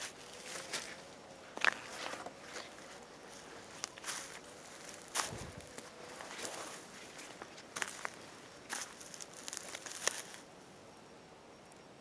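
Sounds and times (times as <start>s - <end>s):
footsteps on dry leaves and twigs: 0.0s - 10.5s.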